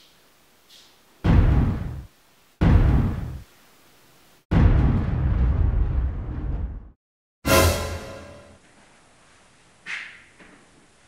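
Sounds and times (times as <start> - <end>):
low booming horror hit: 4.5 - 6.9.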